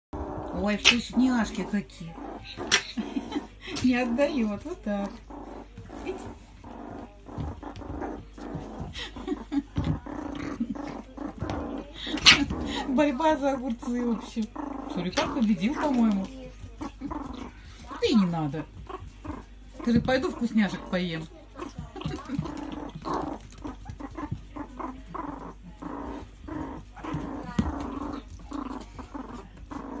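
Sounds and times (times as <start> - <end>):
animals growling: 0.2 - 30.0.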